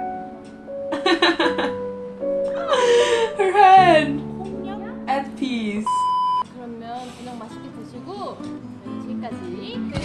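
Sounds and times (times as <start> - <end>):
censor bleep: 5.8 - 6.5.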